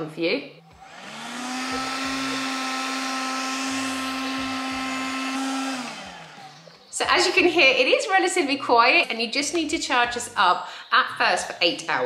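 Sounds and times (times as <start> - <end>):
window vacuum motor humming: 0.6 - 7.4.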